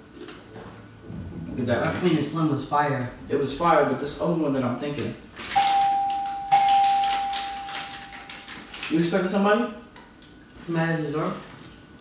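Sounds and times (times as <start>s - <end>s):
doorbell chiming: 5.6s - 8.6s.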